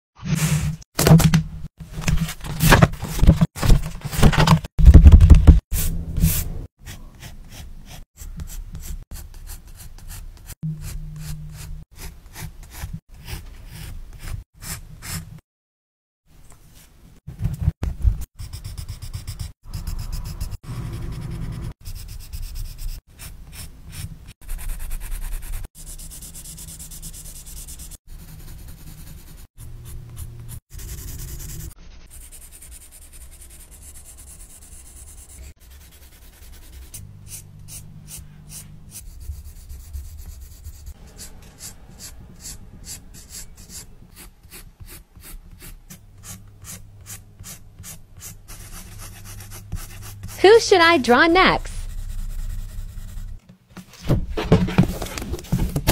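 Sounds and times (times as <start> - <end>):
coloured pencil scratching on paper: 5.8 - 15.2, 18.4 - 50.6, 51.6 - 53.4.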